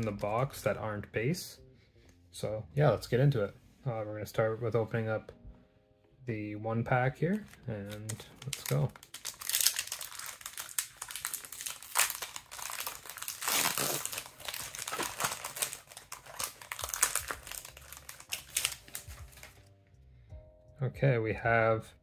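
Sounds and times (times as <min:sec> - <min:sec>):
foil wrapper crinkling: 0:07.3 - 0:19.7.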